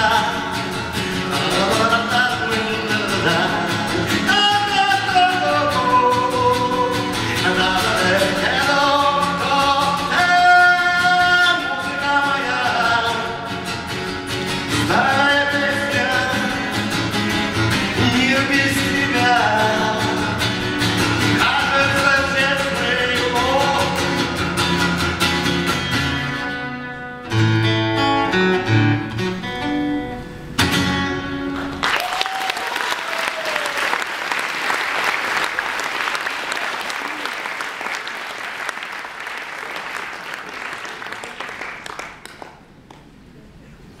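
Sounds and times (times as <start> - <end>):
acoustic guitar strumming chords: 0.0 - 31.8
audience applause: 31.6 - 43.0.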